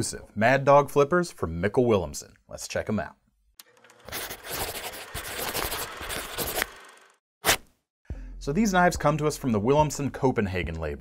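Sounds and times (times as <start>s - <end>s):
pen scratching on paper: 4.1s - 6.7s.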